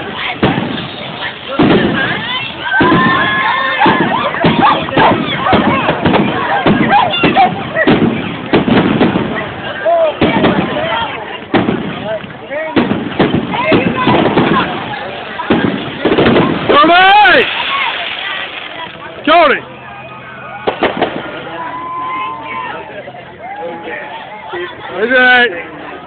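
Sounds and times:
crowd shouting: 0:00.0 - 0:26.0.

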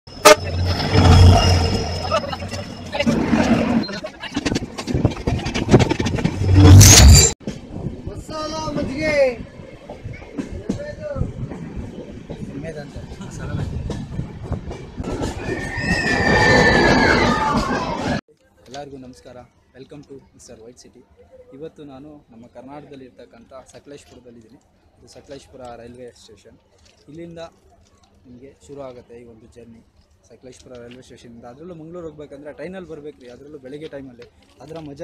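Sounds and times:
loud pitched horn blast: 0:00.1 - 0:01.9
diesel locomotive engine rumble: 0:00.1 - 0:03.2
high wheel squeal: 0:00.1 - 0:04.0, 0:06.4 - 0:07.4, 0:15.1 - 0:18.2
train rumbling on rails: 0:00.1 - 0:18.2.

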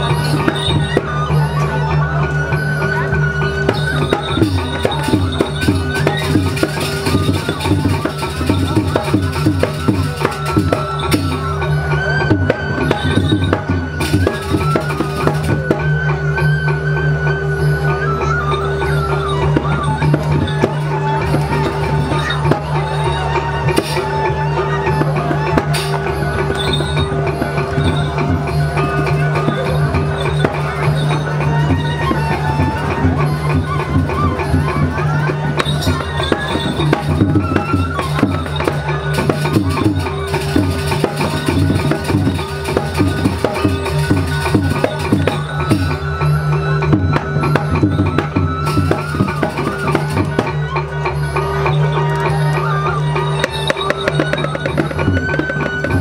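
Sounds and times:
fast drum and percussion strikes: 0:00.0 - 0:56.0
gongs and metallophones ringing: 0:00.0 - 0:56.0.

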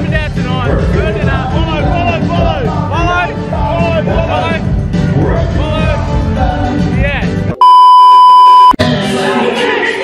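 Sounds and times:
censor bleep tone: 0:07.6 - 0:08.8.

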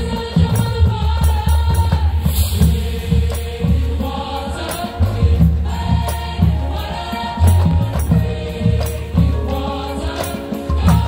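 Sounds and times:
percussion hits: 0:00.0 - 0:11.0
marching band playing: 0:02.2 - 0:11.0.

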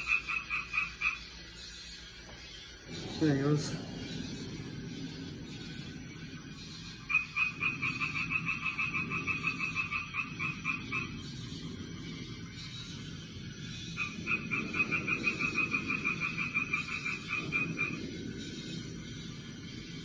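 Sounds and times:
frog trilling: 0:00.0 - 0:19.3
low steady hum: 0:00.0 - 0:20.0.

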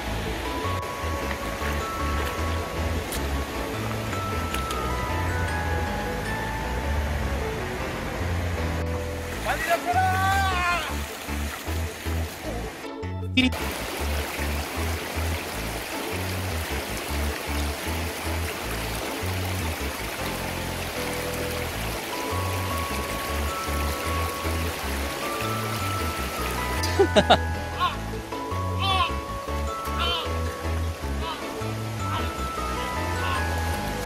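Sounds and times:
background music with steady beat: 0:00.0 - 0:34.0
fast-flowing stream: 0:00.0 - 0:34.0.

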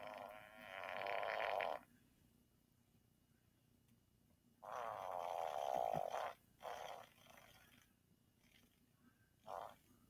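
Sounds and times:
long fluttering fart: 0:00.0 - 0:01.8, 0:04.6 - 0:07.8.

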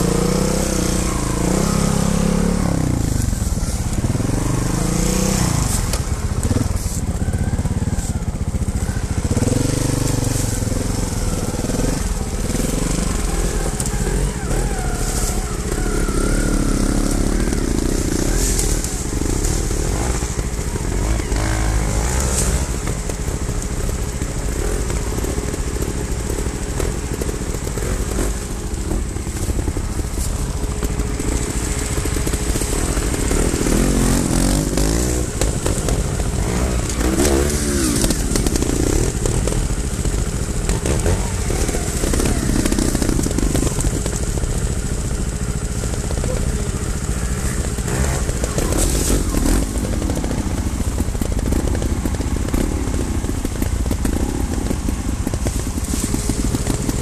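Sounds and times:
motorcycle engine throb: 0:00.0 - 0:57.0
motorcycle revs rising and falling: 0:00.0 - 0:57.0.

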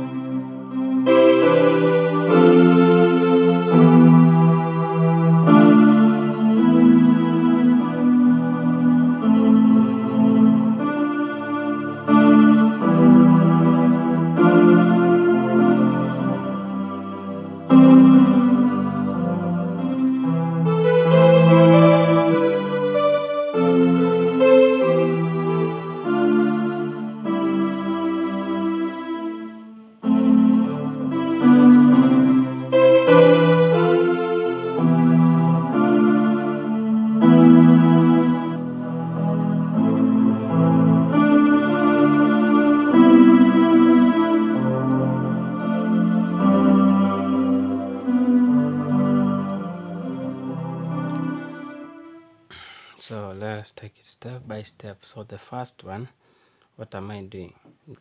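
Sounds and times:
electronic keyboard sustained chords: 0:00.0 - 0:52.8.

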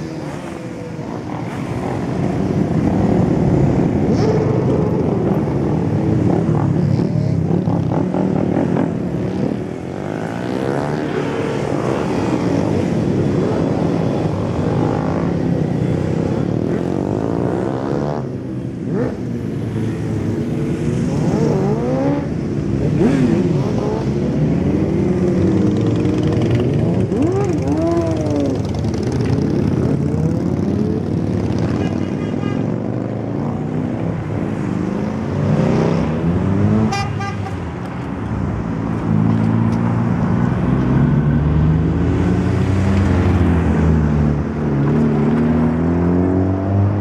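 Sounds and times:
cars revving and passing: 0:00.0 - 0:47.0
motorcycles revving and passing: 0:00.0 - 0:47.0.

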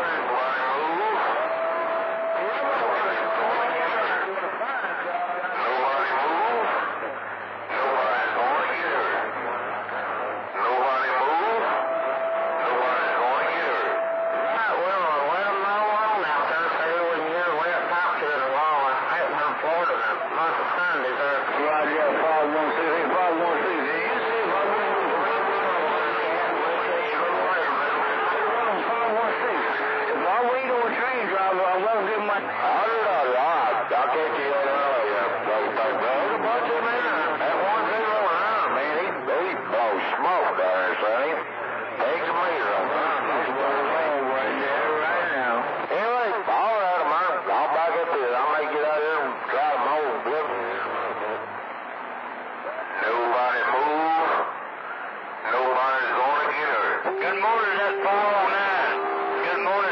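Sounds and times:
garbled voices over radio: 0:00.0 - 0:01.4, 0:02.4 - 0:11.8, 0:12.6 - 0:51.5, 0:52.7 - 0:54.6, 0:55.4 - 0:59.9
steady radio whistle: 0:00.0 - 0:52.0, 0:52.6 - 0:59.9
radio static: 0:00.0 - 0:59.9.

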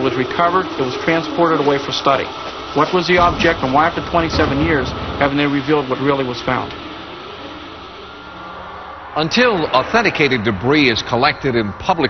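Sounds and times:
steady background hiss: 0:00.0 - 0:12.0.

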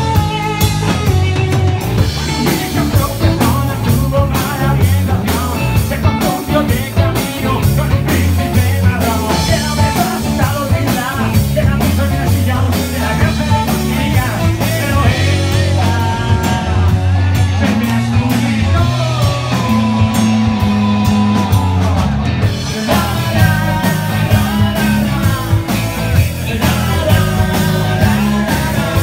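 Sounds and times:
bass guitar: 0:00.0 - 0:29.0
drums and cymbals: 0:00.0 - 0:29.0
electric guitar: 0:00.0 - 0:29.0.

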